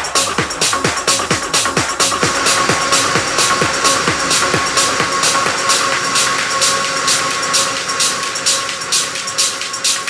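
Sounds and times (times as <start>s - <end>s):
hi-hat ticks: 0.0s - 10.0s
techno track: 0.0s - 10.0s.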